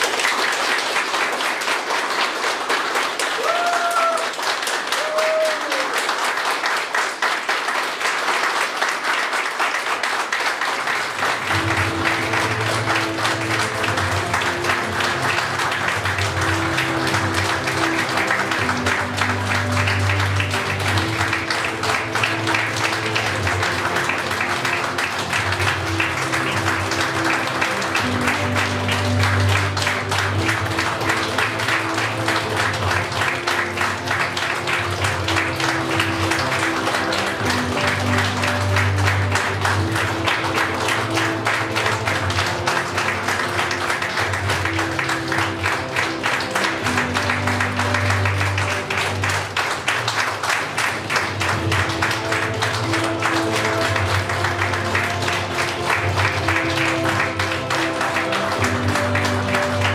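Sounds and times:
crowd clapping: 0.0s - 59.9s.

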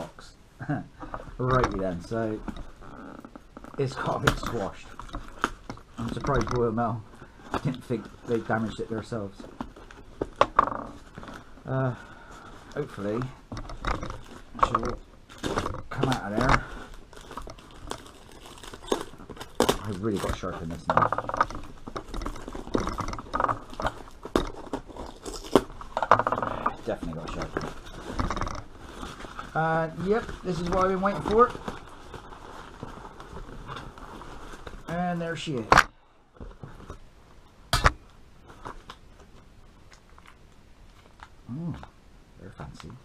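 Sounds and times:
paper and tape crinkling: 1.4s - 35.7s
sharp crackles: 1.4s - 35.9s.

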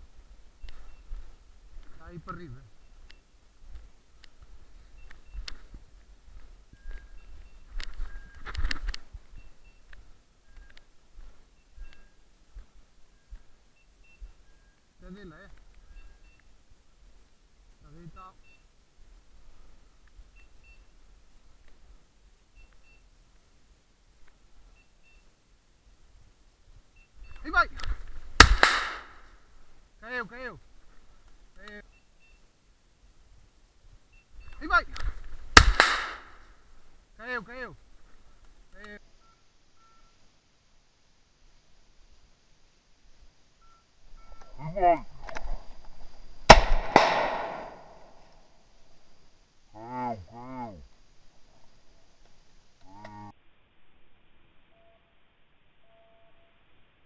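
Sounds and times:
shotgun shots echoing: 28.4s - 29.3s, 35.6s - 36.4s, 46.5s - 48.2s
beeper collar double beeps: 43.6s - 44.6s.

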